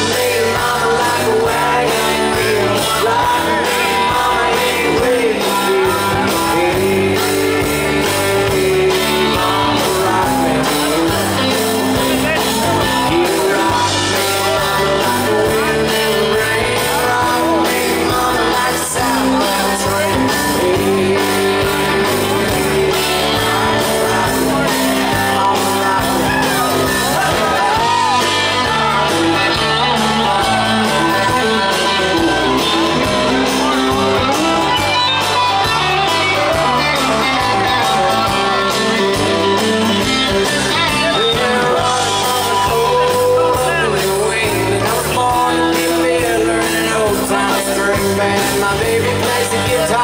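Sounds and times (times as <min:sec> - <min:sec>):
country band playing: 0:00.0 - 0:50.0
strummed acoustic guitar: 0:00.0 - 0:50.0.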